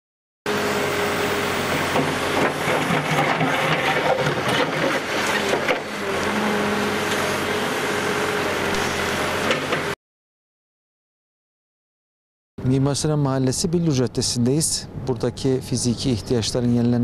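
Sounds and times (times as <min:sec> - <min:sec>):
diesel engine running under load: 0:00.5 - 0:10.0
bucket scraping soil and stones: 0:01.8 - 0:06.5.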